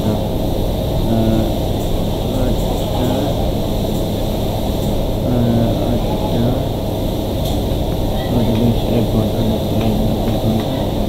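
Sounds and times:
loud steady rumble: 0:00.0 - 0:11.0
faint indistinct voices: 0:01.0 - 0:04.5, 0:05.2 - 0:11.0.

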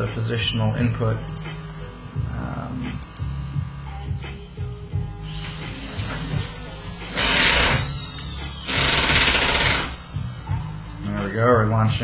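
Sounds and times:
servo motors buzzing: 0:05.2 - 0:10.4.

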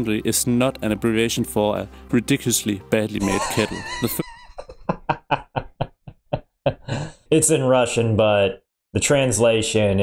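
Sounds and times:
man laughing hard: 0:03.2 - 0:07.2.

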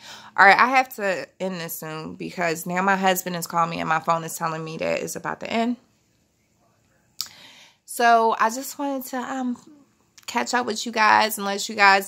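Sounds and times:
short breath in: 0:07.3 - 0:07.8.

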